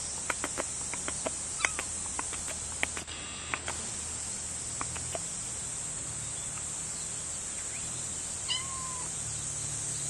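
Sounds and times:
high-pitched insect buzzing: 0.0 - 10.0
kitten meowing: 8.4 - 9.1.

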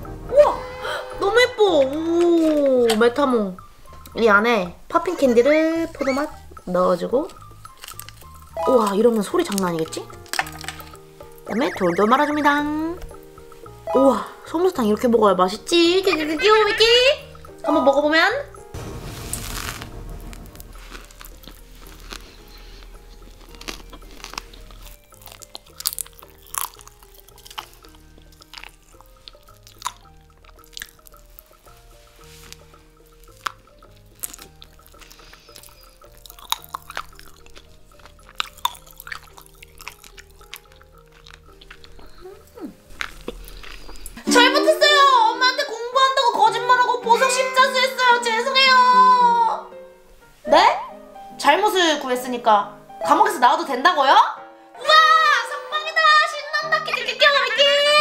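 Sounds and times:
soft background music: 0.0 - 58.0
popping candy crackling: 1.3 - 13.3, 19.3 - 45.0
chewing: 5.8 - 13.4, 20.9 - 44.2.

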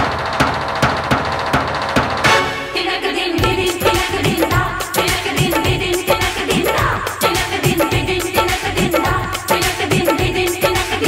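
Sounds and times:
regular drum beats: 0.0 - 11.0
melodic instrumental backing: 2.2 - 11.0.

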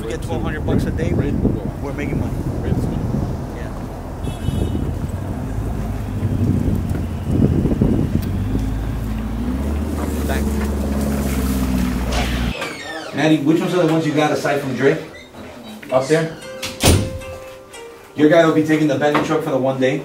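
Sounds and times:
suv engine pulling away: 0.0 - 13.1.

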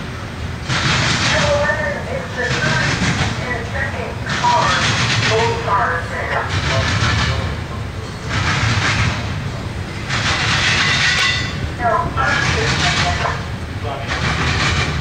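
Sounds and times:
freight train wheels rumbling: 0.0 - 15.0.

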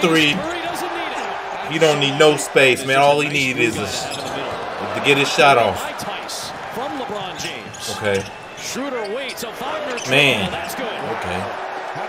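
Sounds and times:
commentator speaking: 0.0 - 11.5.

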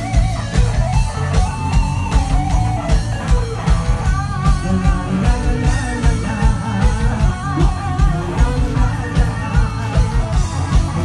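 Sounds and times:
bass: 0.0 - 11.0
electric guitars: 0.0 - 11.0
steady drum beat: 0.0 - 11.0.

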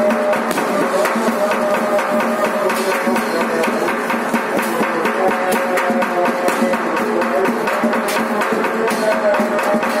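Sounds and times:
fast steady percussion: 0.0 - 10.0.

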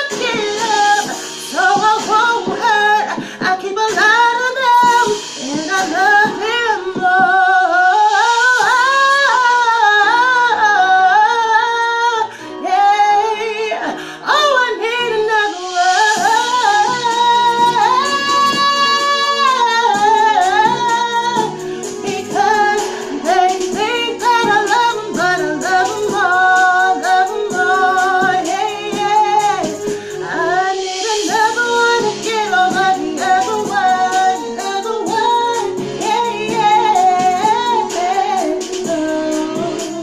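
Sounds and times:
backing track with steady beat: 0.0 - 40.0
woman singing: 0.0 - 40.0.

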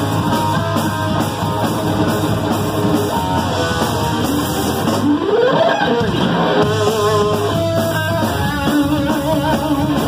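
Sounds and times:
bass: 0.0 - 10.0
drums: 0.0 - 10.0
lead electric guitar: 0.0 - 10.0.

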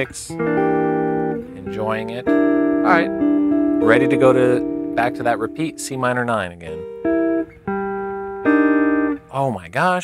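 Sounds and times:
guitar jazz chords ringing: 0.0 - 9.7.

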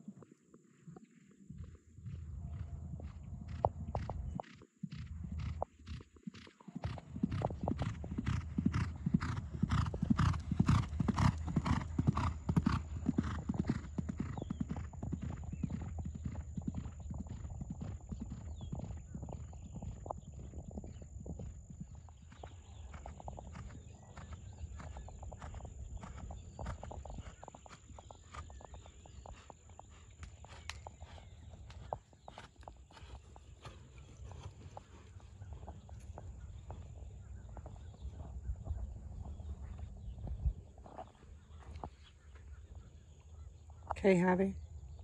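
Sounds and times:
horse hoofbeats: 0.1 - 42.2.

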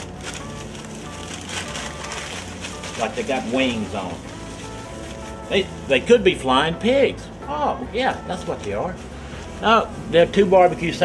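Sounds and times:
wrapping paper crinkling: 0.0 - 6.1, 8.4 - 11.0
soft background music: 0.0 - 11.0.

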